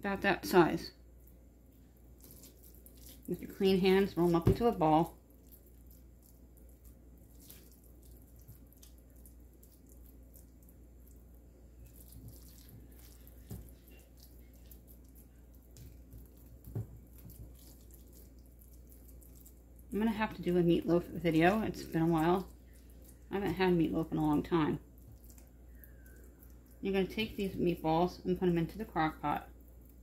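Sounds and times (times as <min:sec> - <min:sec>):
wet squishing of ground meat: 0:01.2 - 0:20.0, 0:21.2 - 0:26.8.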